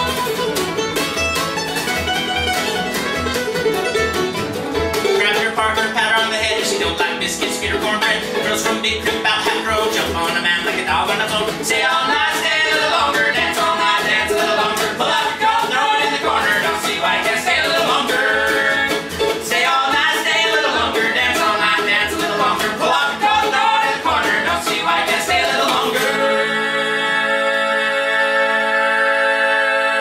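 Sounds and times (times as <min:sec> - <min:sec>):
acoustic string band playing: 0:00.0 - 0:30.0
person singing: 0:05.0 - 0:30.0.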